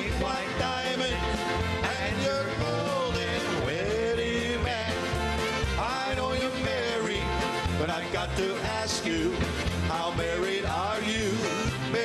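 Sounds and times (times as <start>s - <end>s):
bass beat: 0.0s - 12.0s
men singing: 0.0s - 12.0s
polka band playing: 0.0s - 12.0s.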